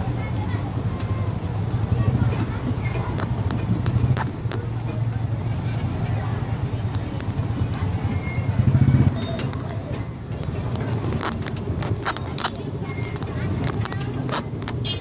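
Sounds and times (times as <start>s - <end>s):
voices of passers-by: 0.0s - 15.0s
scattered knocks and clicks: 0.8s - 15.0s.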